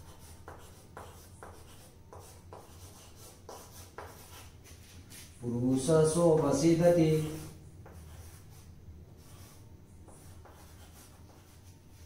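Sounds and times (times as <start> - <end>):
chalk scratching on a chalkboard: 0.0 - 12.0.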